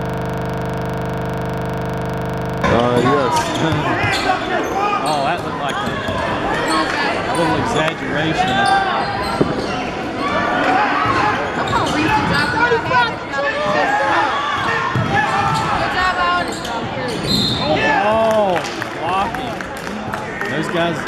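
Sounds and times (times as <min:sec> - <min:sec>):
voices shouting in echoing hall: 0:08.4 - 0:18.5.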